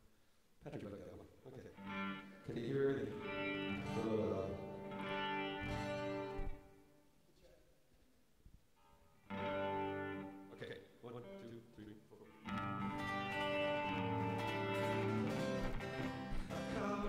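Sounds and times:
electric guitar chords: 1.8s - 6.8s, 9.3s - 10.6s, 12.3s - 17.0s
acoustic guitar chords: 1.8s - 7.0s, 9.3s - 10.5s, 12.4s - 17.0s.

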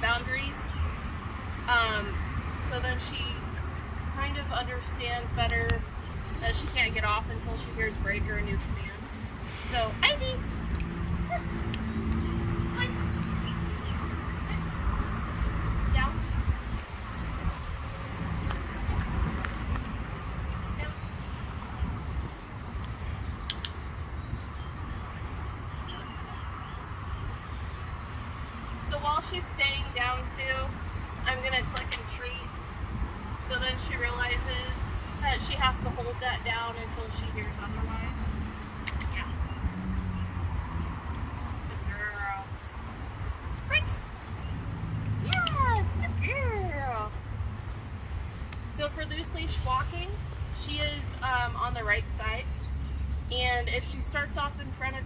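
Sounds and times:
dog-training clicker clicking: 23.5s - 23.8s, 38.8s - 39.2s, 45.3s - 45.6s.

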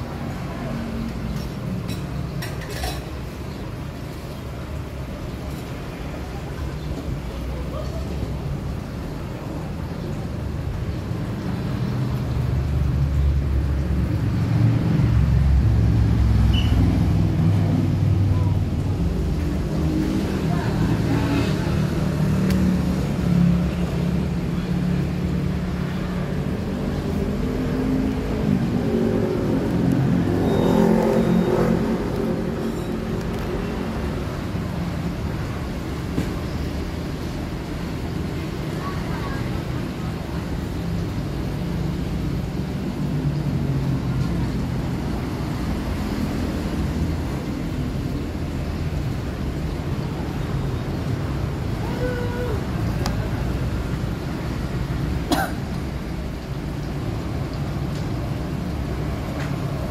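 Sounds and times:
road traffic: 0.0s - 59.9s
vehicle passing loudly: 12.7s - 35.6s.

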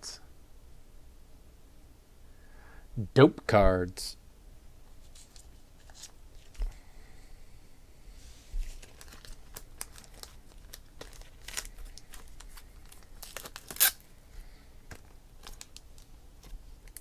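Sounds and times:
plastic crackle: 8.6s - 14.0s, 14.9s - 17.0s
packaging crinkling: 8.6s - 14.1s, 14.9s - 17.0s.

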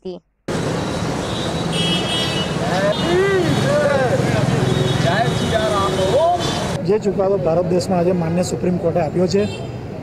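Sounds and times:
people talking: 0.0s - 0.2s.

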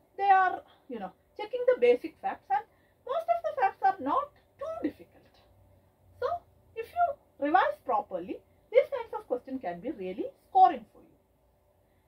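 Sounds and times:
woman speaking: 0.0s - 5.5s, 6.2s - 11.1s.

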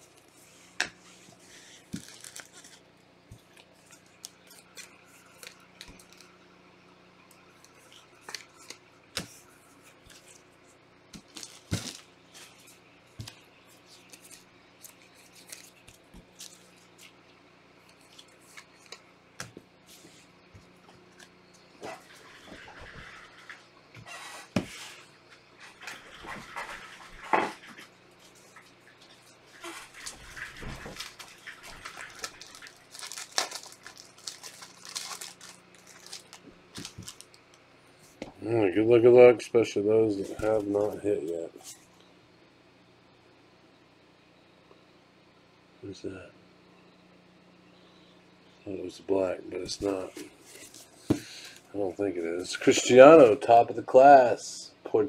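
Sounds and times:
wrappers rustling and crinkling: 1.4s - 6.3s, 11.2s - 17.2s, 29.1s - 38.2s, 40.2s - 41.9s.

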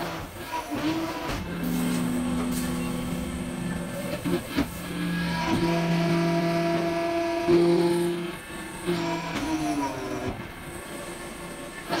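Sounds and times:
hydraulic press whine: 0.0s - 12.0s.

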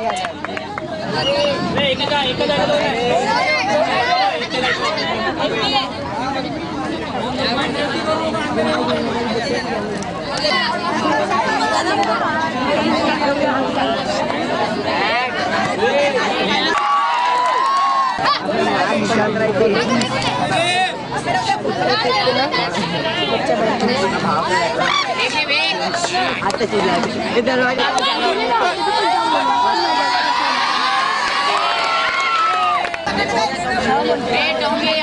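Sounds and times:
crowd shouting and chattering: 0.0s - 35.0s.

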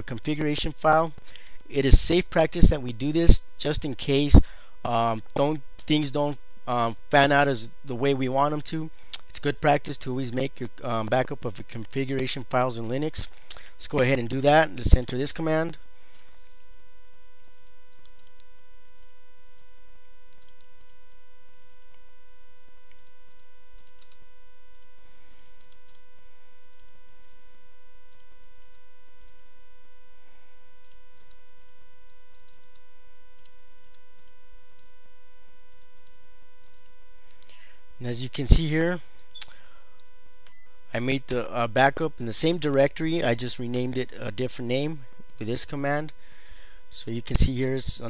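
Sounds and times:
electrical hum with whine: 0.0s - 48.0s
computer keyboard clicks: 17.4s - 19.6s, 20.3s - 22.0s, 30.8s - 32.8s.

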